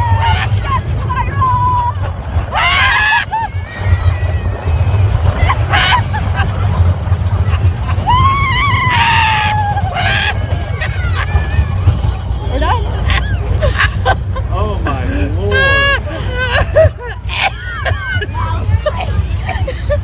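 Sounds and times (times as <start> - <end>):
wind buffeting microphone: 0.0 - 14.5
riders laughing and screaming: 0.0 - 20.0.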